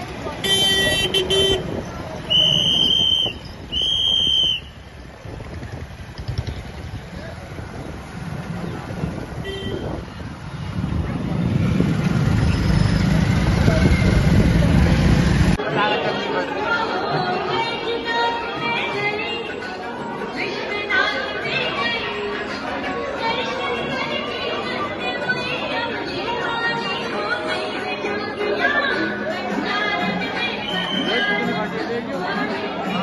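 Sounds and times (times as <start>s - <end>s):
traffic and wind rumble: 0.0s - 15.7s
crowd chatter: 0.0s - 33.0s
vehicle horns honking: 0.4s - 4.5s, 9.4s - 10.1s.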